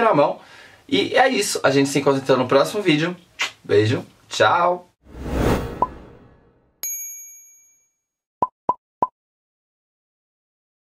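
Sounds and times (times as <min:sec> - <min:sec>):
bright bell-like ding: 0:06.8 - 0:08.0.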